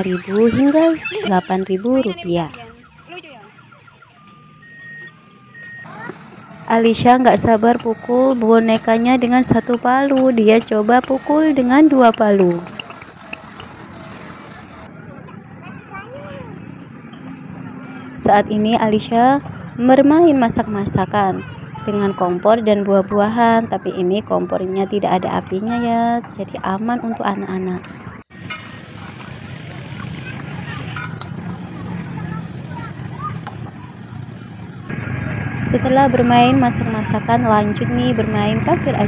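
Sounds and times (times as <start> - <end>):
distant people chatting: 0.0 - 39.0
faint distant voices: 0.0 - 39.0
outdoor background noise: 0.0 - 39.0.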